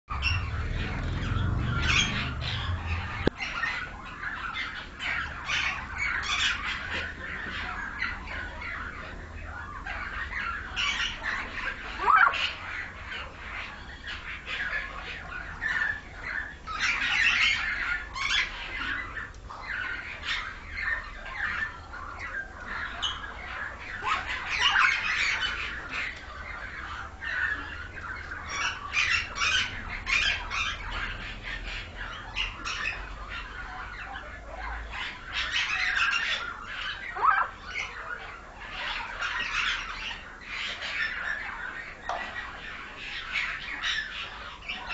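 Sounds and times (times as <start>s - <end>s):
bird squawking and whistling: 0.1s - 6.6s.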